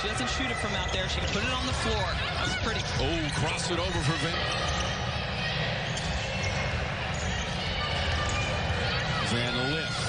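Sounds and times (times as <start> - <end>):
players moving and calling: 0.0 - 10.0.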